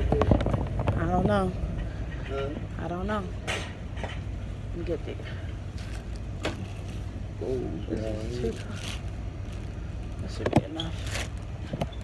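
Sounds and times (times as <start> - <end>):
low store background hum: 0.0 - 12.0.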